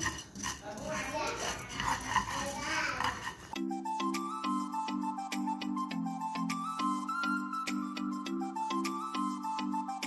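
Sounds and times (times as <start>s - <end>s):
pasta scraping in frying pan: 0.0s - 3.6s
music with repeating notes: 3.5s - 10.0s.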